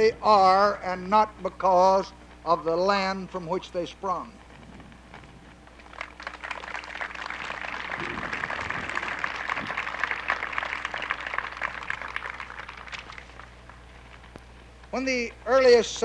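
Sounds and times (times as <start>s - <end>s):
audience applauding: 5.8s - 14.3s.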